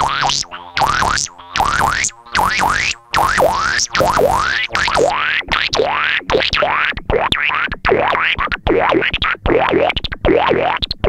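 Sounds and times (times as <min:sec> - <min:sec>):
synthesizer notes swooping in pitch: 0:00.0 - 0:07.0.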